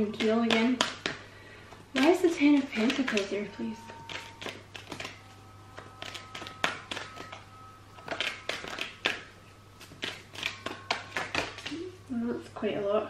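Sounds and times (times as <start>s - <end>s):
cards being shuffled: 2.0s - 11.8s.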